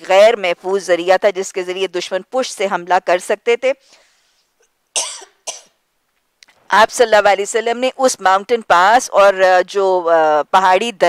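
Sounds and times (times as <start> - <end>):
woman coughing: 5.0 - 5.8.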